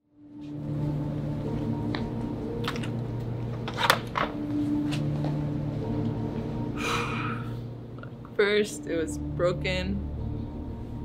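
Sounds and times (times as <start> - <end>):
person gasping: 6.8 - 7.7.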